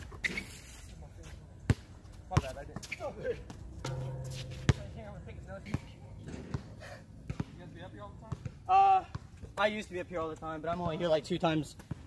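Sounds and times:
basketball bouncing on hard court: 7.3s - 7.6s.

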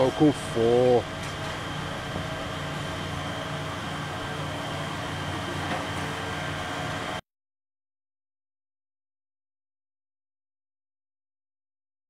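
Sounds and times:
vehicle engine idling: 0.0s - 7.2s.

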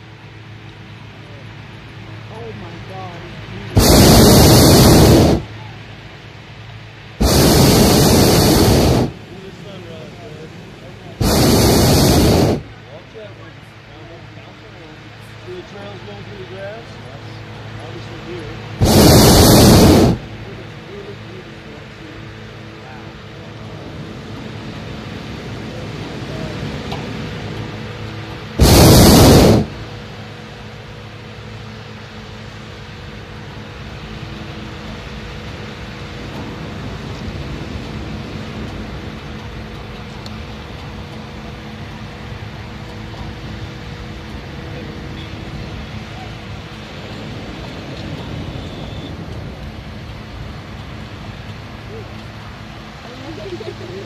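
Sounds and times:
propane burner blast: 3.7s - 5.6s, 7.2s - 10.1s, 10.9s - 13.1s, 18.8s - 20.8s, 28.3s - 30.3s.

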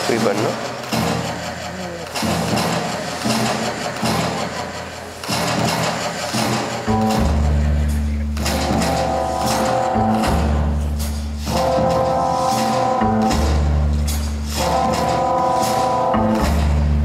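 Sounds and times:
jazz big band playing: 5.7s - 17.0s.

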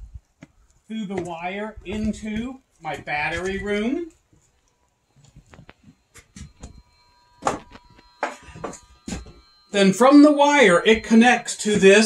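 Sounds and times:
footsteps: 0.0s - 9.6s, 10.6s - 12.0s
faint steady high tone: 0.8s - 12.0s.

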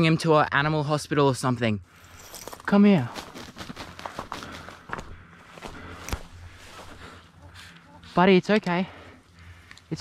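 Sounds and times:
footsteps through grass and leaves: 2.0s - 8.8s.

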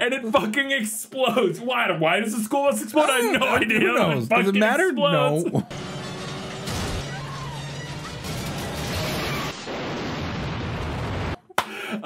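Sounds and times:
fire roaring: 6.6s - 11.4s
explosion: 8.0s - 11.5s.

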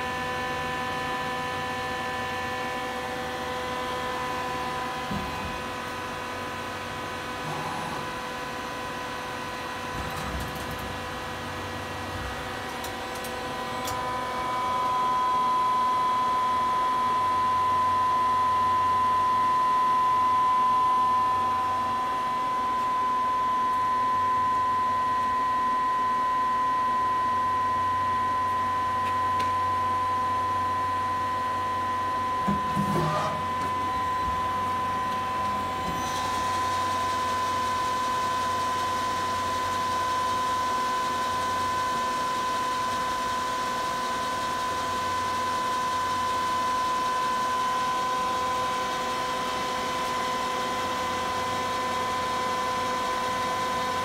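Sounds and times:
lathe machine whine: 0.0s - 54.0s.

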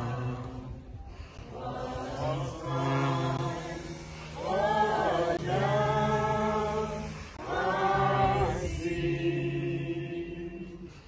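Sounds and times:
group singing unaccompanied: 0.0s - 11.0s.

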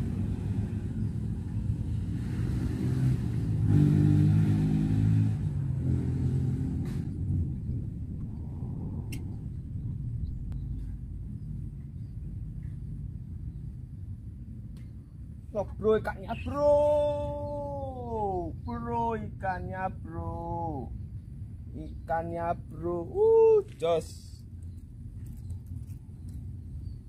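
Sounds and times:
engine passing by: 0.0s - 11.7s.

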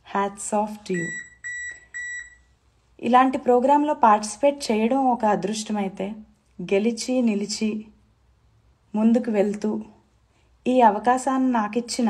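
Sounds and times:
short electronic beeps: 1.0s - 2.4s.

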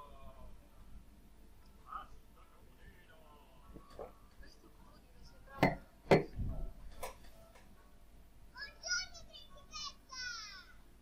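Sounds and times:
wine glass knock on table: 5.6s - 6.4s.

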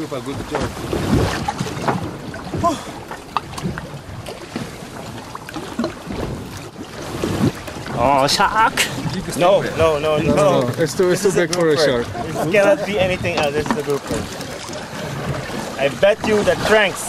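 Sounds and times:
wind on microphone: 0.0s - 5.1s, 5.8s - 11.0s, 11.9s - 14.4s
choppy water around boat: 0.0s - 17.0s
knocks on boat: 0.4s - 2.7s, 12.9s - 15.5s.

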